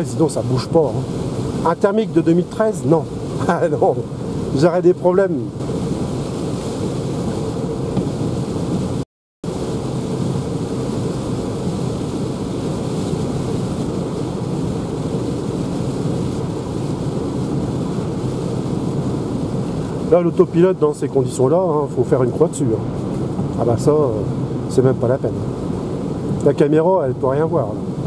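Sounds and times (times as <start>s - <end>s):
rain and wind on car body: 0.0s - 28.0s.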